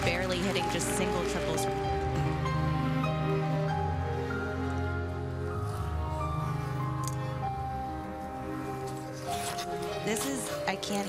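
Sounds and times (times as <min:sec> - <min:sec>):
slow music over arena speakers: 0:00.0 - 0:10.0.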